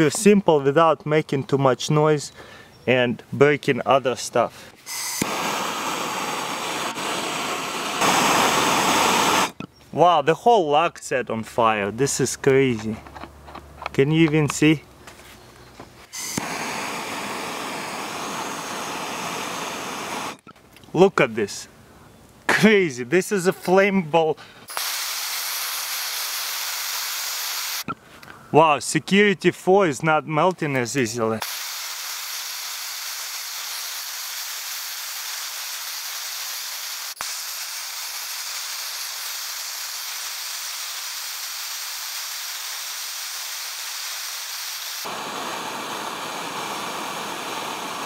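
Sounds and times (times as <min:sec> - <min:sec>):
gas torch flame hissing: 0:04.6 - 0:09.6, 0:16.0 - 0:20.4, 0:24.7 - 0:27.9, 0:31.4 - 0:48.0.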